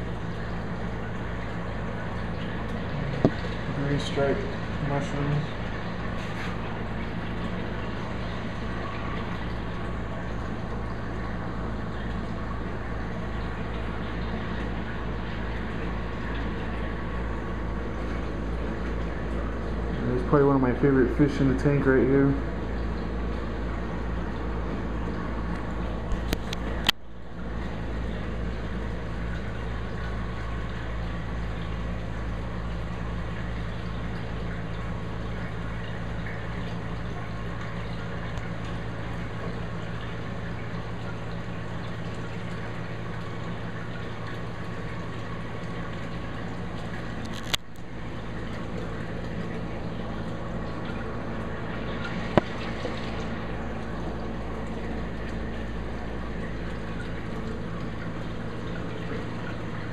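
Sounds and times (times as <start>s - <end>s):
low electrical hum: 0.0s - 59.9s
running water: 0.0s - 59.9s.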